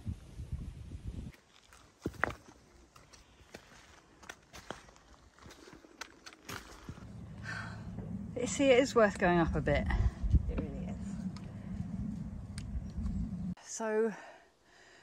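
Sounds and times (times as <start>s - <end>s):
footsteps on loose rock: 1.4s - 7.1s
low rumble: 6.8s - 13.6s.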